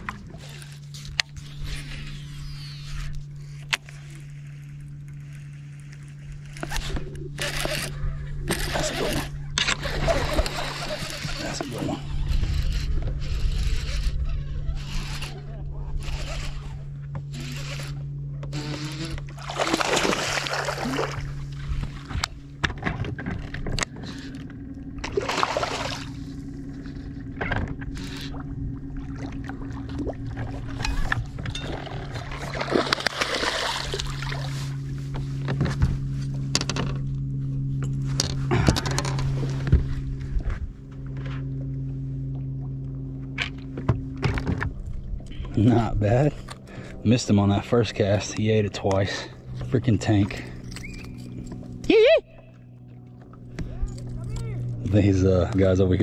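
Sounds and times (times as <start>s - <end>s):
electric trolling motor hum: 0.0s - 56.0s.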